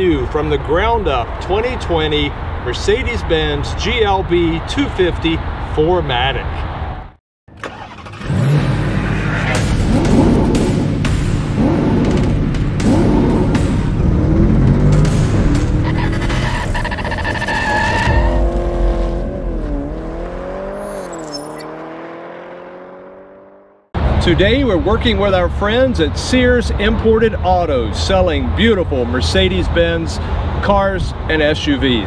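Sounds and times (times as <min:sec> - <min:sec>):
car engine revving: 0:07.6 - 0:24.2
intro music: 0:08.8 - 0:17.3
tyre squeal: 0:15.8 - 0:18.7, 0:20.8 - 0:21.7.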